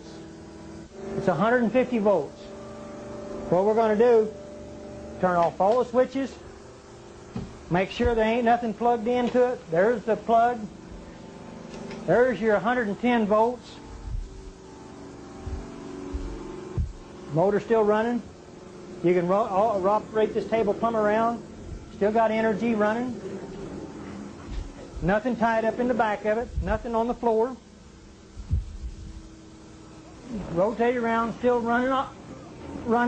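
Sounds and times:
motor humming: 0:00.0 - 0:33.0
dull low thumps: 0:07.3 - 0:08.4, 0:14.0 - 0:14.6, 0:15.4 - 0:17.1, 0:26.5 - 0:26.9, 0:28.3 - 0:29.3
low thump: 0:16.2 - 0:17.0.

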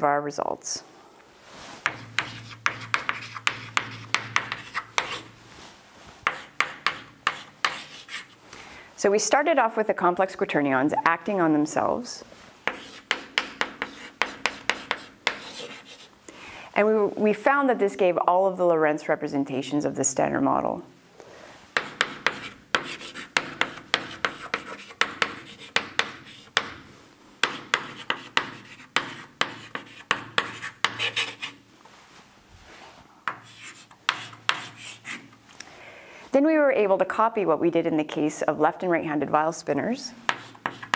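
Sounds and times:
chalk tapping and scraping: 0:01.6 - 0:05.3, 0:06.2 - 0:08.4, 0:12.6 - 0:16.1, 0:21.7 - 0:31.6, 0:33.2 - 0:35.4, 0:40.3 - 0:40.9.

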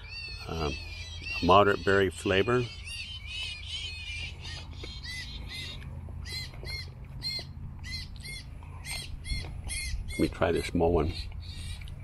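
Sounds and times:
bird calling: 0:00.0 - 0:12.0
low steady rumble: 0:00.0 - 0:12.0.

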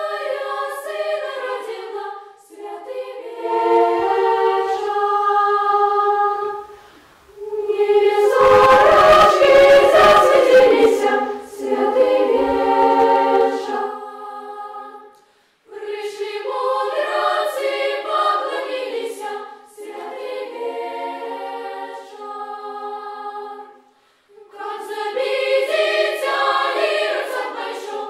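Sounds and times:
children's choir singing a cappella: 0:00.0 - 0:28.0.

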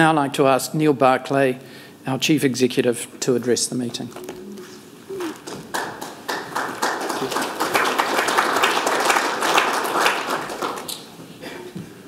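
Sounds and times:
audience applauding: 0:05.1 - 0:11.1.

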